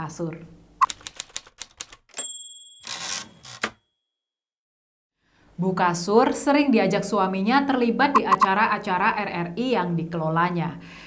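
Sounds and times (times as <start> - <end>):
typewriter carriage return sweep: 0.8 - 2.0, 2.8 - 3.8
typewriter bell ding: 2.1 - 3.9.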